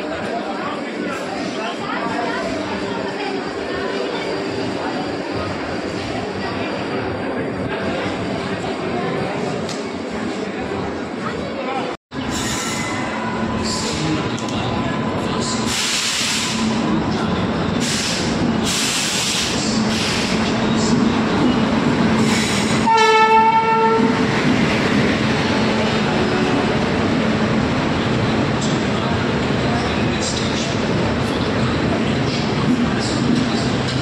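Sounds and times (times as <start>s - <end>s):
train wheel rumble: 12.1s - 34.0s
train horn blast: 22.8s - 24.1s.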